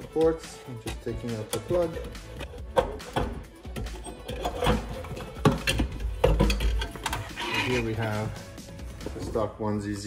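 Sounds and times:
background music: 0.0s - 10.0s
metal part clicking and knocking: 0.8s - 7.7s.

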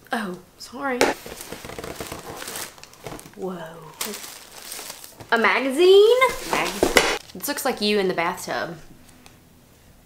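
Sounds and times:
tissue paper crinkling: 1.2s - 7.4s.

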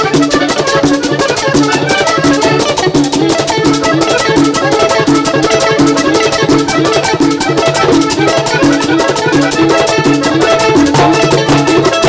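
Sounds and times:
accordion: 0.0s - 12.0s
congas: 0.0s - 12.0s
electric guitars: 0.0s - 12.0s
metal scraper rhythm: 0.0s - 12.0s
repeating bass line: 10.6s - 12.0s.

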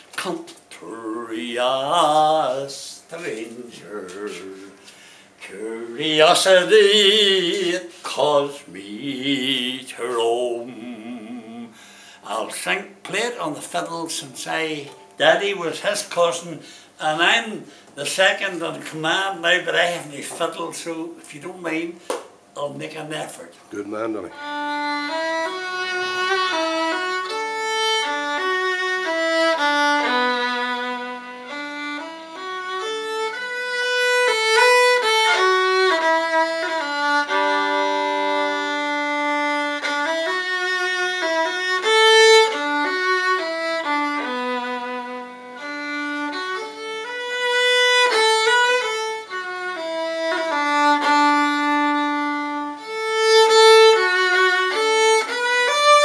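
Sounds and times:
solo fiddle playing slow air: 24.3s - 56.0s.

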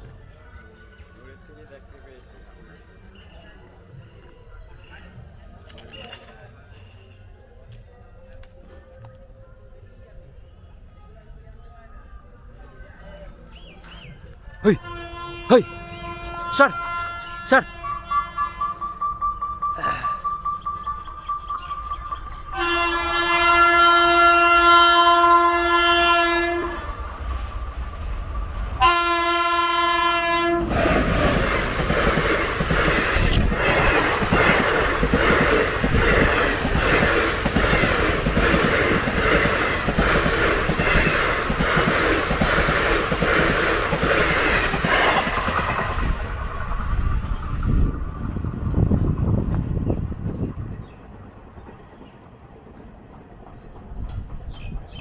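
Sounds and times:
train horn blasts: 14.8s - 21.7s, 22.4s - 27.0s, 28.8s - 30.8s
train clattering over rail joints: 30.7s - 55.0s.

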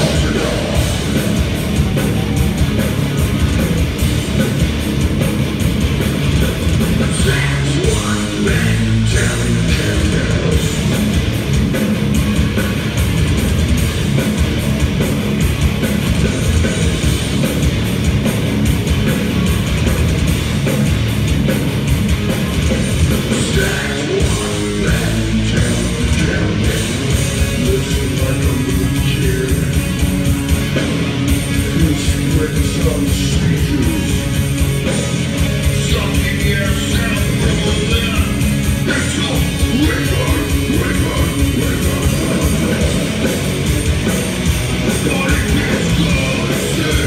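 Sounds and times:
vocalist singing: 0.0s - 3.9s, 6.4s - 10.8s, 22.9s - 29.9s, 31.4s - 34.3s, 35.7s - 43.4s, 44.8s - 47.0s
bass guitar: 0.0s - 47.0s
distorted electric guitars: 0.0s - 47.0s
drums: 0.0s - 47.0s.

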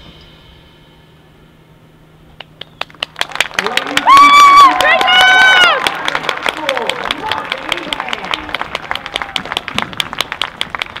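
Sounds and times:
audience applauding: 2.4s - 11.0s
loud sharp claps close by: 2.4s - 11.0s.

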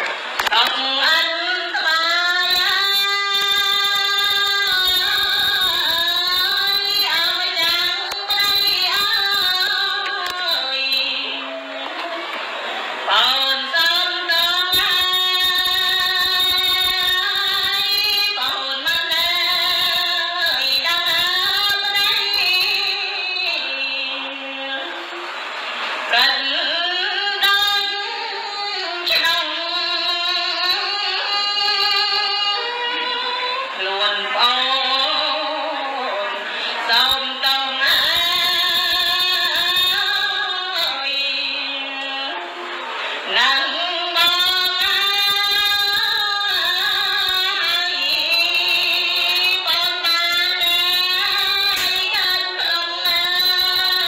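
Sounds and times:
woman chanting in long held notes: 0.4s - 12.4s, 13.0s - 25.2s, 26.1s - 54.0s.

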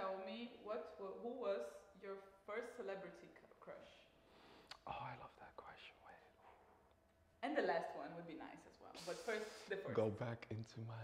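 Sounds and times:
person whispering: 4.7s - 6.4s, 9.0s - 11.0s.

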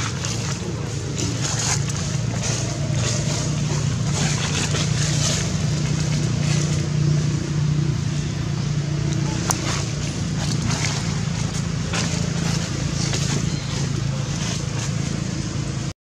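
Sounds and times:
engine humming: 0.0s - 15.9s.

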